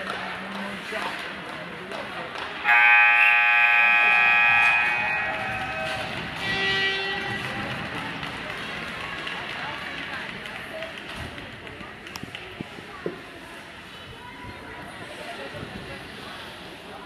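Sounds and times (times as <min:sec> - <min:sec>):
voices: 0:00.0 - 0:17.0
arena horn blast: 0:02.6 - 0:07.4.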